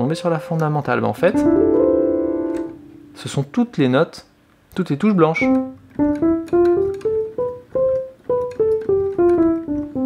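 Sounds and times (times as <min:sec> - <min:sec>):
piano scale on keyboard: 0:00.0 - 0:03.6, 0:05.2 - 0:10.0.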